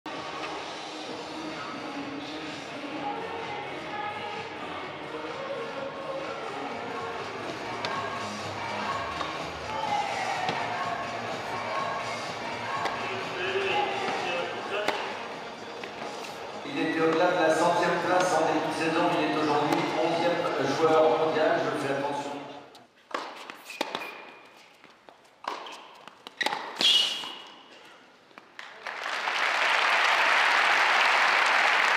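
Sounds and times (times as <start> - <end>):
background music: 0.1 - 22.7
crowd chatter: 0.1 - 22.7
tennis ball bouncing: 7.6 - 8.2, 8.8 - 10.8, 12.6 - 16.4, 17.0 - 20.6, 23.1 - 24.4, 25.4 - 27.6.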